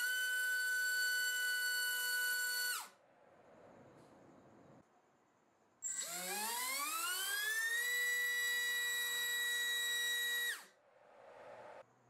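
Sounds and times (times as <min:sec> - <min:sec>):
drone motor whine: 0:05.8 - 0:11.8.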